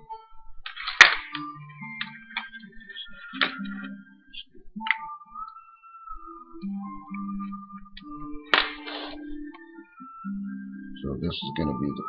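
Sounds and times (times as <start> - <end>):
faint steady tones: 0.0 - 12.0
hands rustling wires: 7.0 - 9.8.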